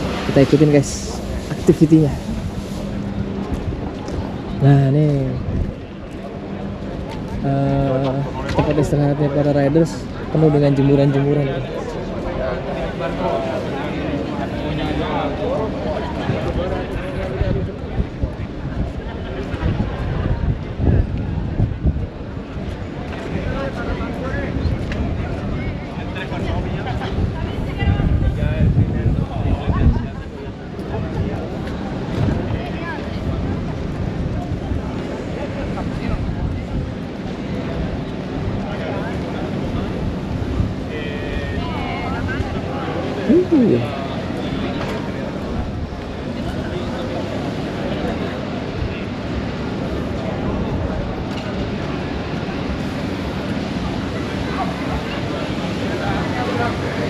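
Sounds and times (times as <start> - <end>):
wind buffeting microphone: 0.0 - 9.4, 15.6 - 44.0
background chatter of people: 0.0 - 57.0.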